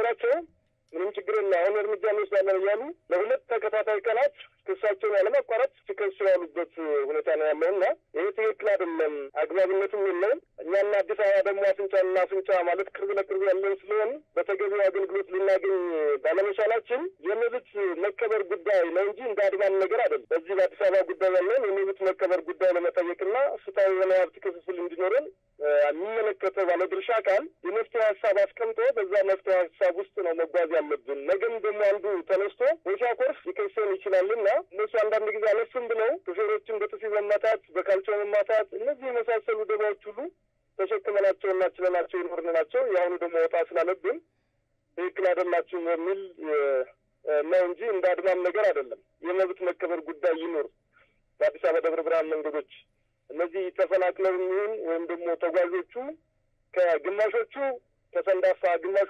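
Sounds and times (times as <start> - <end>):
person talking over telephone: 0.0 - 44.2, 45.0 - 50.7, 51.4 - 56.2, 56.8 - 59.0.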